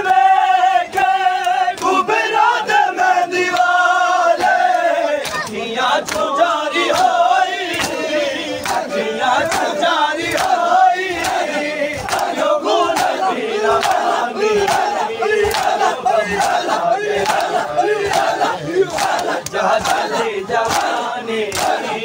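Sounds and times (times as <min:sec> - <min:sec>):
crowd of men chanting: 0:00.0 - 0:22.0.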